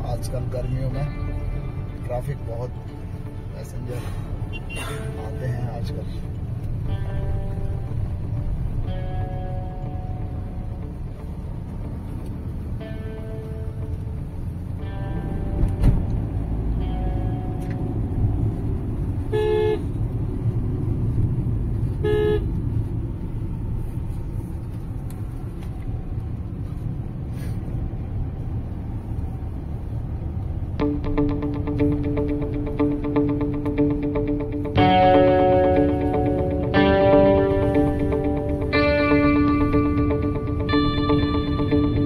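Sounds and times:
car engine and tyre rumble: 0.0s - 42.0s
car horn toots: 4.4s - 5.2s, 19.2s - 20.0s, 21.9s - 22.6s.

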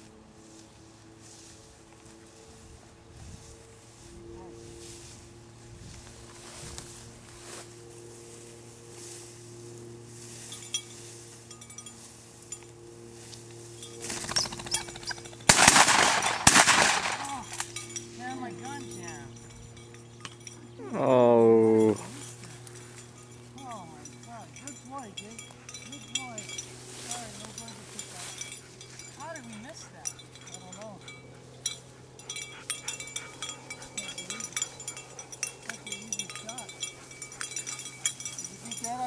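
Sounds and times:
footsteps through tall grass: 0.0s - 19.0s, 25.9s - 30.6s
shotgun shots: 15.5s - 17.3s.

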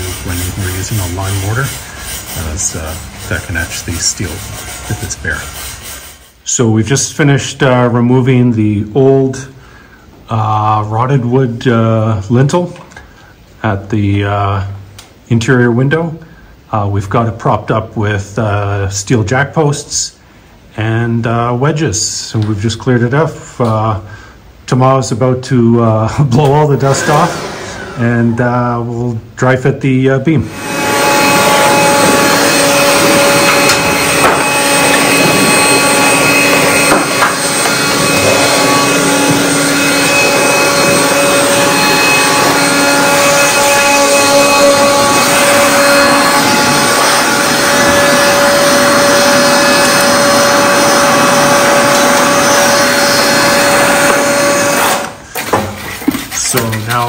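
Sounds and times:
air blower whining: 0.0s - 6.6s, 26.1s - 28.8s, 30.3s - 57.0s.

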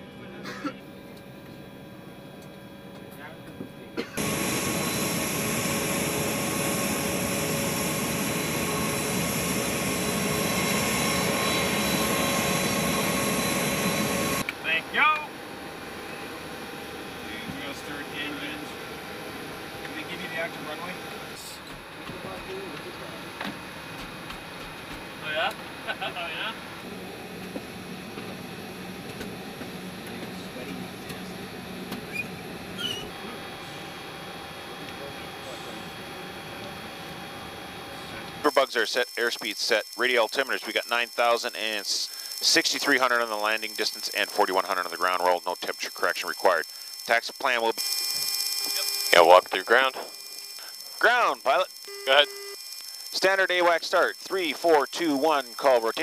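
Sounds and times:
aircraft cockpit ambience: 0.0s - 56.0s
jet aircraft rushing hiss: 4.2s - 14.4s
muffled voices: 19.8s - 23.5s, 30.0s - 32.2s, 32.8s - 47.4s.

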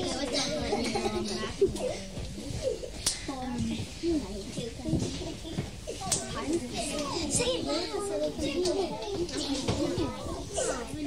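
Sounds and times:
children chattering: 0.0s - 11.0s.

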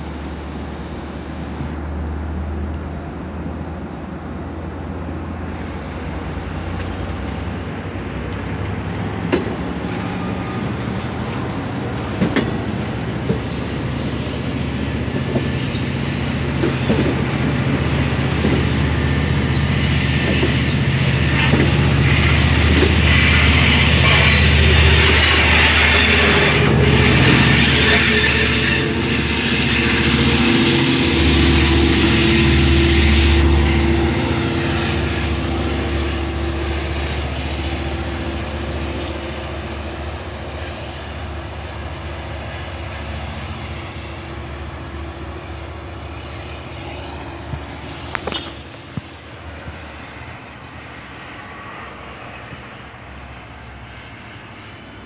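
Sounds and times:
diesel train rolling past: 0.0s - 55.0s.

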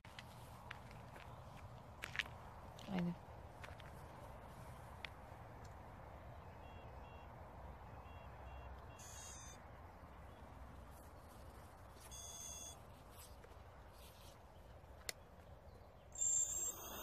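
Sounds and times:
multi-tone electronic chirps: 6.5s - 7.3s, 8.0s - 9.6s, 12.1s - 12.8s, 16.2s - 17.0s
short electronic beeps: 6.5s - 9.6s, 12.0s - 12.8s, 16.2s - 17.0s.

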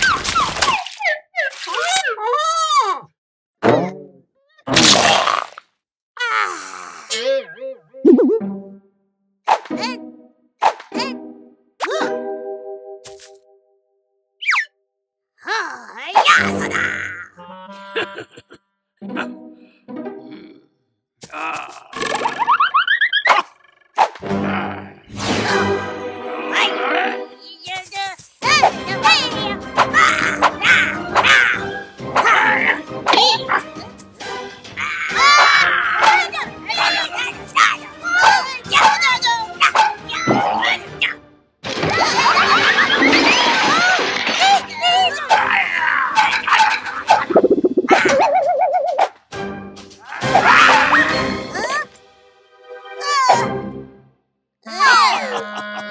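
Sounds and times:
cartoon pop: 4.7s - 5.6s, 8.0s - 8.4s, 47.2s - 49.1s
background music: 7.3s - 13.4s, 19.0s - 20.8s, 24.2s - 27.5s, 28.4s - 54.2s
cartoon dog-like barks and yelps: 16.0s - 17.4s, 22.6s - 24.1s, 29.8s - 33.8s, 34.9s - 37.2s, 37.8s - 41.2s, 44.8s - 49.1s, 50.2s - 51.3s, 54.7s - 55.9s
wavering pitched tone: 47.3s - 48.9s
whoosh: 47.3s - 49.0s
excited cries: 54.8s - 55.9s.

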